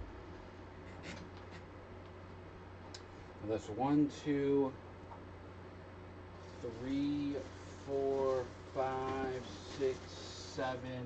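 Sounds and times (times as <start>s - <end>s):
low room hum: 0.0s - 11.0s
rustling of paper being handled: 6.4s - 10.8s.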